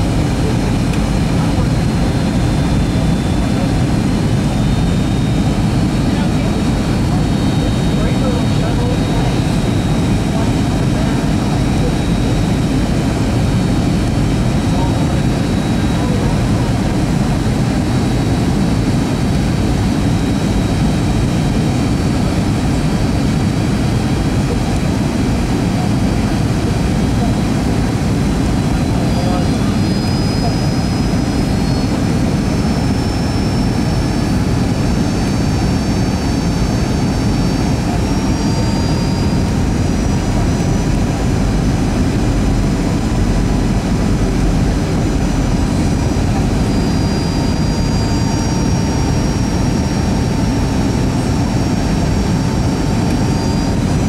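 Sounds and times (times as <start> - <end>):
airplane cabin roar: 0.0 - 54.0
jet engine high whine: 0.0 - 54.0.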